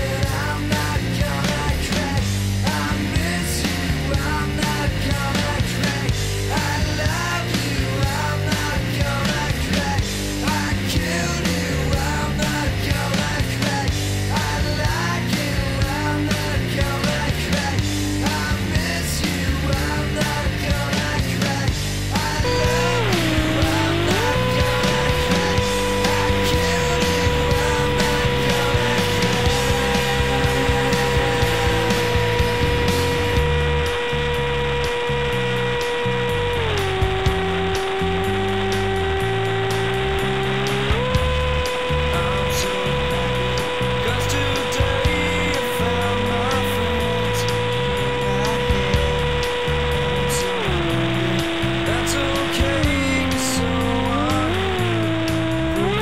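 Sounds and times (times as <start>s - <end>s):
rock music: 0.0s - 56.0s
held tone bending in pitch: 22.1s - 56.0s.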